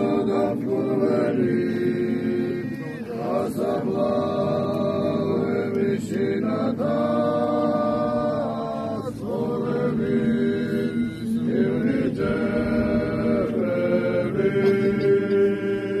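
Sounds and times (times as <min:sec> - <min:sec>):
group singing folk chant: 0:00.0 - 0:16.0.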